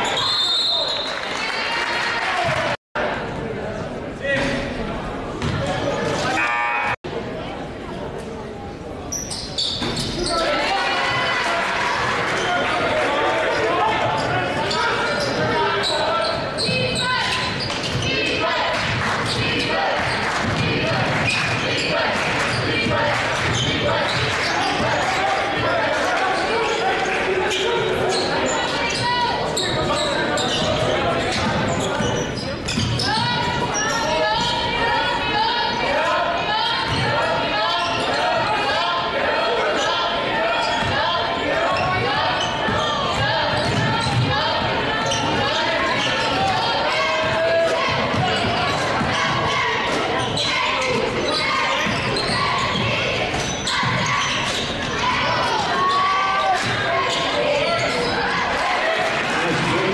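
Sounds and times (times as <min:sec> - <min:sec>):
crowd chatter: 0:00.0 - 0:59.9
voices shouting: 0:33.0 - 0:59.9.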